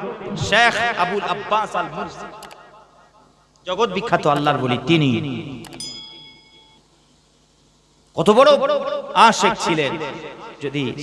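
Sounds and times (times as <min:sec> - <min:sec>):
notification bell ding: 0:05.8 - 0:06.8.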